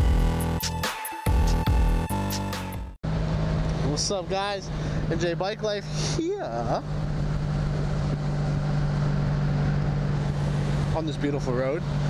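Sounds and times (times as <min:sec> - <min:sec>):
motorcycle engine cruising: 0:03.0 - 0:12.0.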